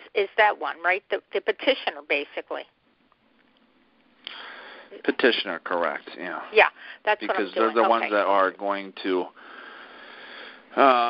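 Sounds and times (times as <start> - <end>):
person breathing in: 4.3 - 5.0, 9.4 - 10.7.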